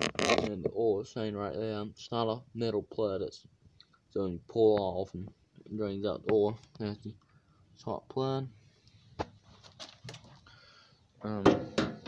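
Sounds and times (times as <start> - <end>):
faint handling noise: 8.8 - 10.5.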